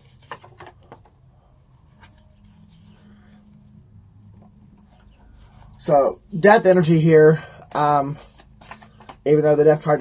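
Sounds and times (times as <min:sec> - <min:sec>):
cards rustling: 0:00.0 - 0:03.5, 0:04.6 - 0:10.0.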